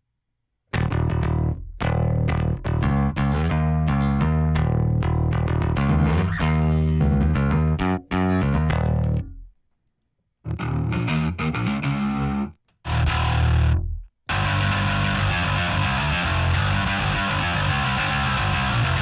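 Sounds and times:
distorted electric bass: 0:00.7 - 0:09.5, 0:10.5 - 0:19.0.

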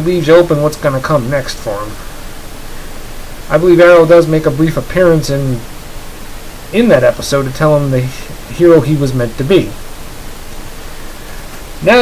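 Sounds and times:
man speaking: 0:00.0 - 0:02.1, 0:03.5 - 0:05.7, 0:06.7 - 0:09.8, 0:11.8 - 0:12.0
steady background hiss: 0:00.0 - 0:12.0.

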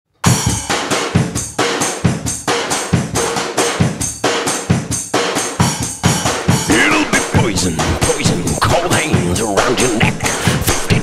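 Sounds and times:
drum kit playing a beat: 0:00.2 - 0:11.0.

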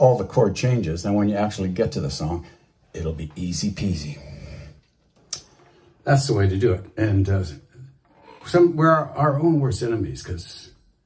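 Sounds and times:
man's voice: 0:08.4 - 0:10.7.

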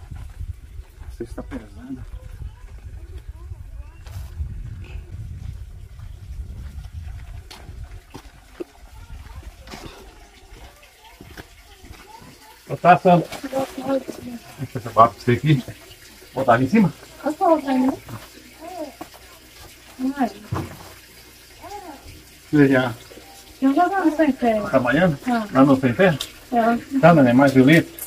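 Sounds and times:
people talking: 0:01.1 - 0:05.1, 0:08.6 - 0:20.7, 0:21.6 - 0:27.9
low rumbling noise: 0:02.1 - 0:08.5.

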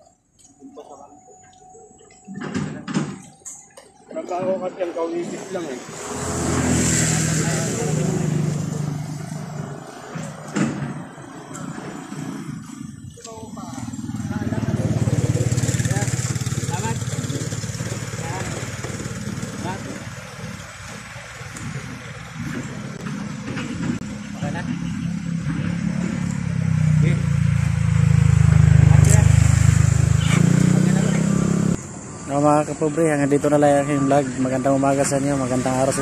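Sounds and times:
motorcycle engine running: 0:11.7 - 0:36.0.

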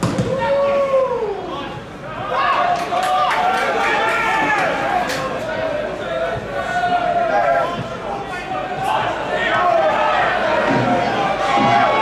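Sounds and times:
voices shouting and calling: 0:00.3 - 0:12.0.

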